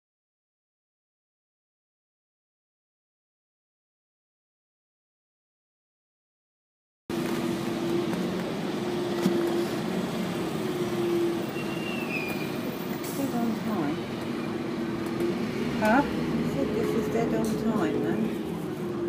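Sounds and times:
bus engine humming: 7.1s - 19.0s
voices talking: 11.5s - 19.0s.

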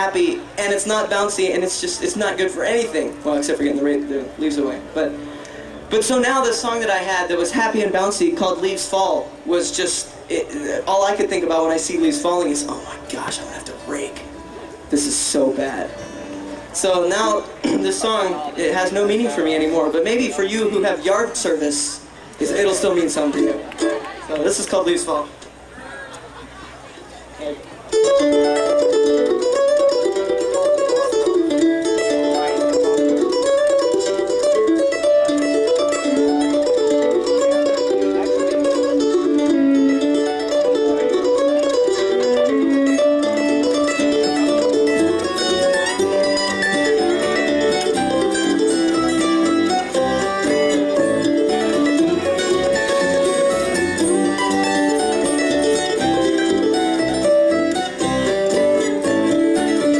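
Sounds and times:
upright bass: 0.0s - 26.4s, 27.3s - 59.9s
guitar: 0.0s - 59.9s
mandolin: 0.0s - 59.9s
fiddle: 25.7s - 59.9s.

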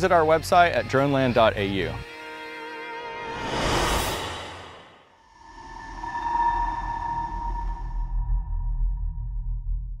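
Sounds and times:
deep pulsing bass rumble: 7.7s - 10.0s.

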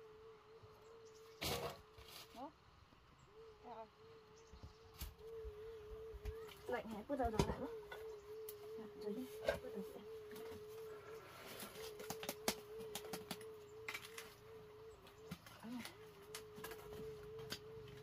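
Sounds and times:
wooden sticks clicking and knocking: 11.8s - 14.3s.

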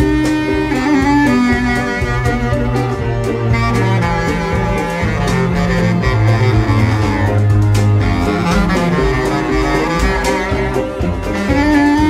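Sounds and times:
bass clarinet melody: 0.0s - 12.0s
live band accompaniment: 0.0s - 12.0s.

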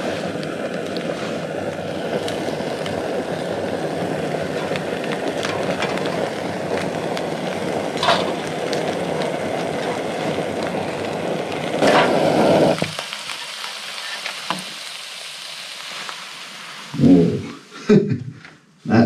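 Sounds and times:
camping stove burning: 0.0s - 17.6s
meat sizzling: 0.0s - 17.6s.

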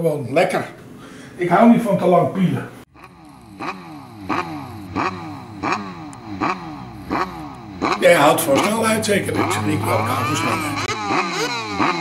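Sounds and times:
engine throttle blips: 2.9s - 12.0s.

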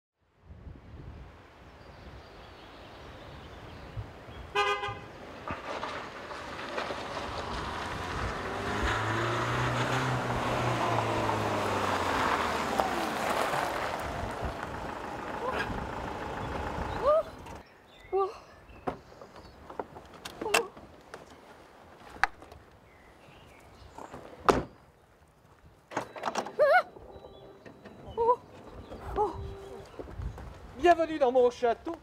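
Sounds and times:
tyres crunching on gravel: 5.2s - 17.6s, 27.0s - 32.0s
van engine running: 7.1s - 17.6s
rising voice calls: 12.7s - 17.6s, 26.6s - 30.1s.

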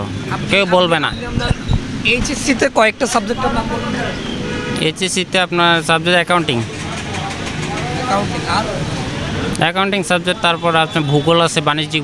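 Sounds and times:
man speaking: 0.0s - 6.7s
street traffic noise: 0.0s - 12.0s.

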